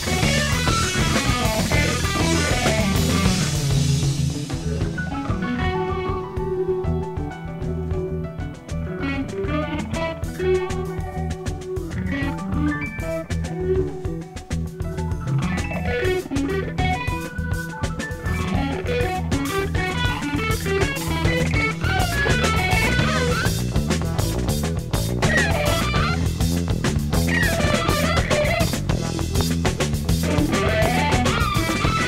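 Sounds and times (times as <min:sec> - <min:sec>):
electric guitar quick runs: 0:00.0 - 0:07.0, 0:15.3 - 0:32.0
bass guitar: 0:00.0 - 0:32.0
drum kit: 0:00.0 - 0:32.0.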